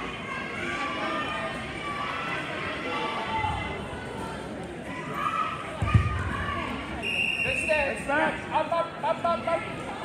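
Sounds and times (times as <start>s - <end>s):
thud: 5.8s - 6.3s.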